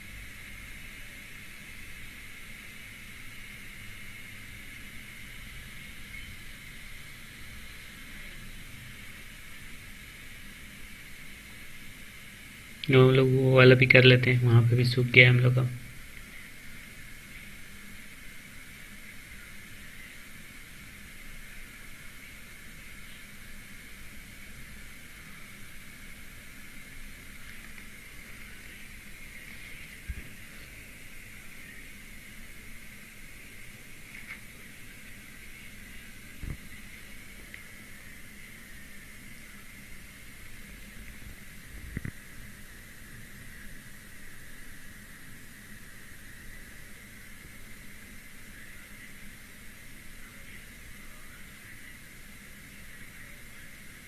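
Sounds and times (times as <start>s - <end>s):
faint hum: 0.0s - 54.0s
low background hiss: 0.0s - 54.0s.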